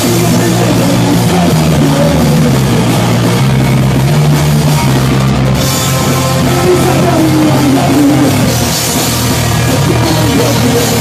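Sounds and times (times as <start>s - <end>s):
pop punk band playing live: 0.0s - 11.0s.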